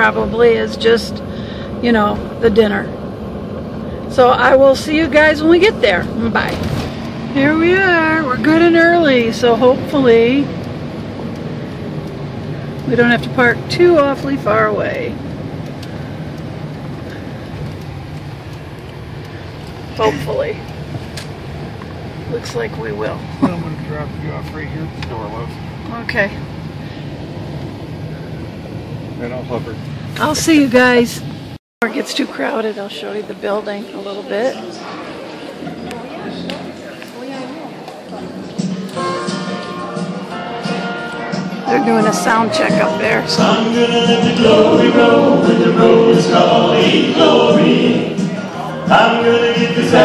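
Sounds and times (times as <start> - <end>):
car engine and tyres humming: 0.0 - 50.0
murmur of talk: 29.2 - 46.1, 46.7 - 50.0
band sound check over pa: 38.0 - 50.0
held notes: 38.8 - 50.0.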